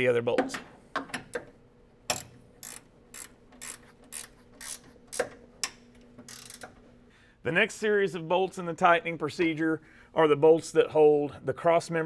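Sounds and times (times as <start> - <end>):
ratcheting wrench clicking: 2.1 - 6.8.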